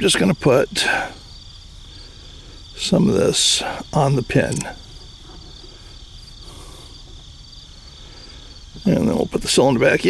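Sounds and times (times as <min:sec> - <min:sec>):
insects trilling: 0:00.0 - 0:10.0.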